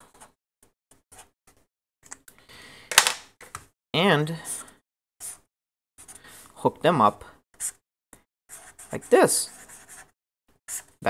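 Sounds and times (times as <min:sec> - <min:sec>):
marker scratching on paper: 0:08.5 - 0:11.0.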